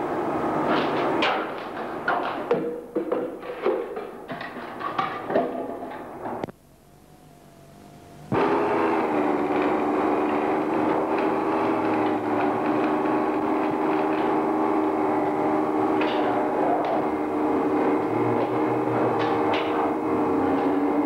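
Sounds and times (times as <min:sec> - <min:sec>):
steady hum of held pitches: 0:06.0 - 0:11.0.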